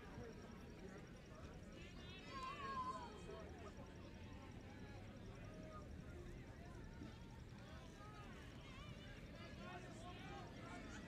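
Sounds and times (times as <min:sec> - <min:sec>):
faint open-air background noise: 0:00.0 - 0:11.0.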